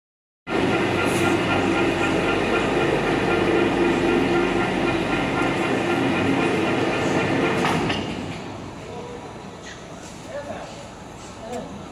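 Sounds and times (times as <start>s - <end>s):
overhead crane running: 0.5s - 11.9s.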